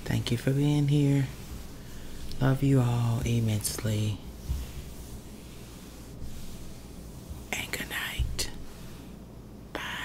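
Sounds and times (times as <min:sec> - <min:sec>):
low room noise: 0:00.0 - 0:10.0
breathy whisper: 0:07.5 - 0:08.8, 0:09.7 - 0:10.0.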